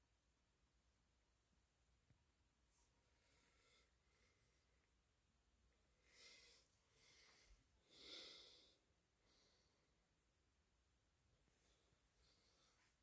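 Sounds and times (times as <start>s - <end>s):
faint breaths: 2.7s - 4.9s, 6.0s - 10.0s, 11.5s - 13.0s.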